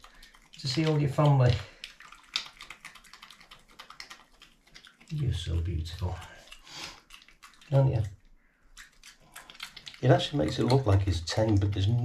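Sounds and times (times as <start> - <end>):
badger crunching dry food: 0.0 - 12.0.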